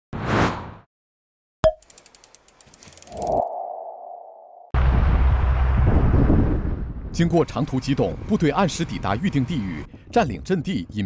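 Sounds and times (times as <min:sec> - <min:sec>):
quick run of clicks: 0:01.8 - 0:03.4
loud low rumble: 0:04.1 - 0:07.2.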